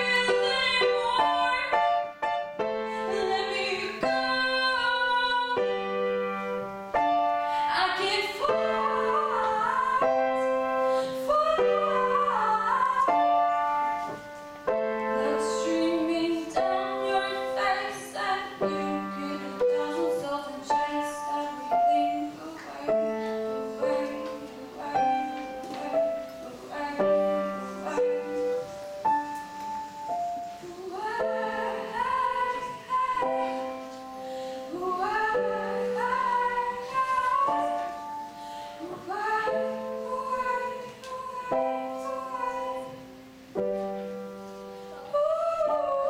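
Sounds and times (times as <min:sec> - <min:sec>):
woman singing: 0:00.0 - 0:06.5, 0:07.3 - 0:14.3, 0:15.0 - 0:28.8, 0:30.6 - 0:43.1, 0:44.9 - 0:46.0
piano chords: 0:00.0 - 0:46.0.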